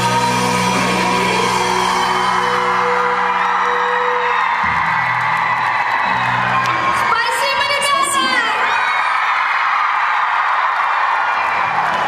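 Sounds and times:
live pop-rock band playing: 0.0s - 7.9s.

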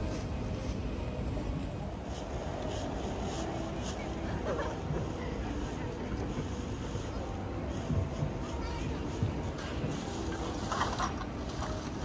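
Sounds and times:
faint indistinct voices: 0.0s - 12.0s
low city rumble: 0.0s - 12.0s.

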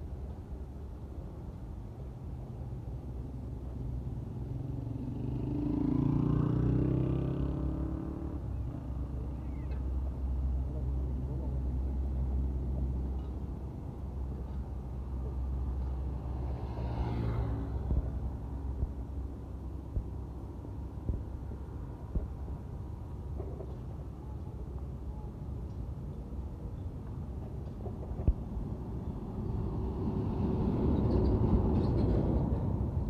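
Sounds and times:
heavy vehicles rumbling: 2.3s - 33.0s
vehicle engines passing close: 2.9s - 24.2s, 27.0s - 33.0s.

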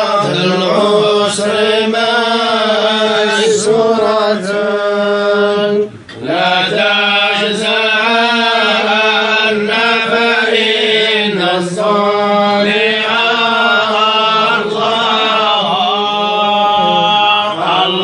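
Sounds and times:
men chanting: 0.0s - 18.0s.

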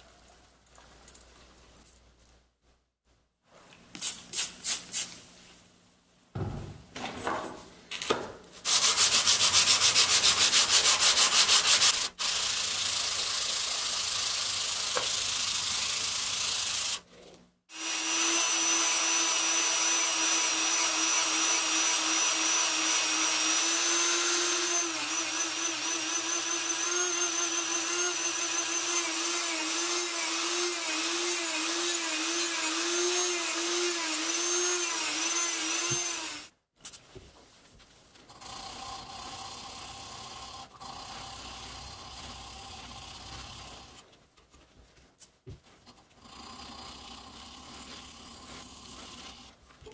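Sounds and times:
metal rubbing on abrasive strip: 8.6s - 12.2s
small electric power tool running: 11.4s - 17.0s, 17.7s - 36.5s.

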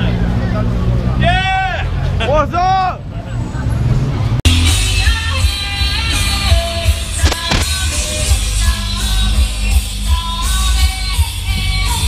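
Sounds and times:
street crowd noise: 0.0s - 12.0s
music: 4.5s - 12.0s.

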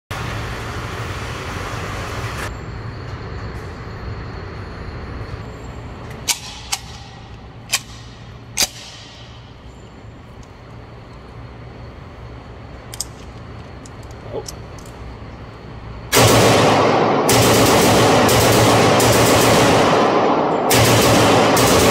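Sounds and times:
low indoor rumble: 0.1s - 21.9s
gunshots echoing: 16.1s - 21.9s.

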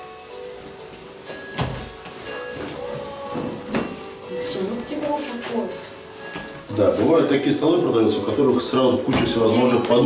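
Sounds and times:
fabric swishing: 0.0s - 7.4s
quiet background music: 0.0s - 10.0s.

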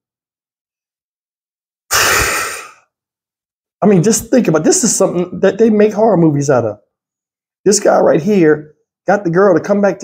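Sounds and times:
man speaking: 3.8s - 6.8s, 7.7s - 10.0s.

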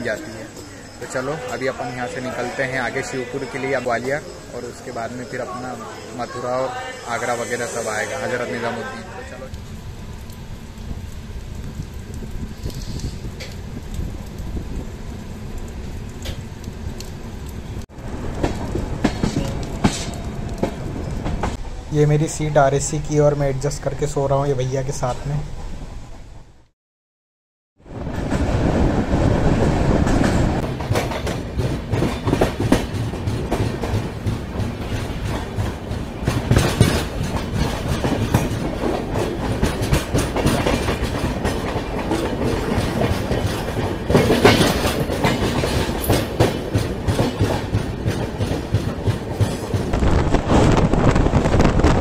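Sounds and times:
train running rumble: 0.0s - 26.7s, 27.9s - 52.0s
wheels clattering over rail joints: 29.6s - 50.0s.

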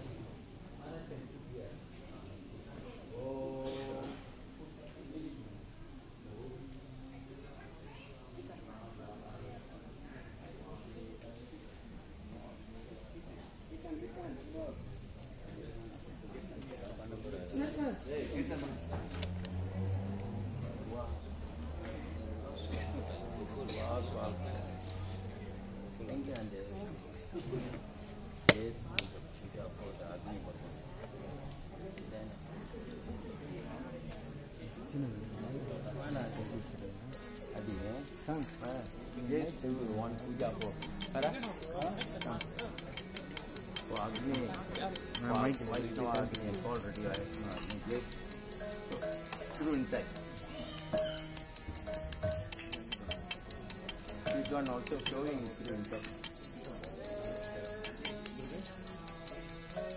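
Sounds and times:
faint voices: 34.8s - 59.9s
small metal bell ringing rapidly: 35.9s - 59.9s.

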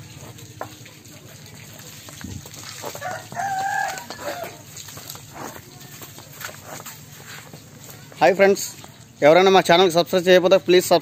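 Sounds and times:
rooster crowing: 2.9s - 4.7s.

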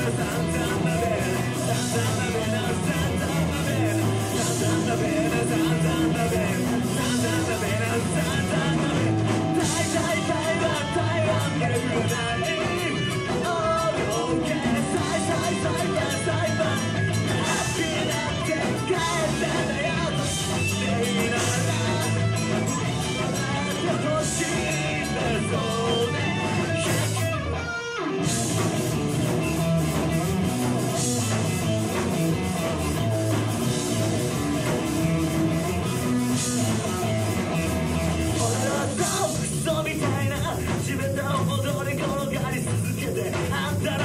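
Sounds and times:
bass guitar: 0.0s - 44.0s
drum kit: 0.0s - 44.0s
electric guitars: 0.0s - 44.0s
live rock band playing: 0.0s - 44.0s.

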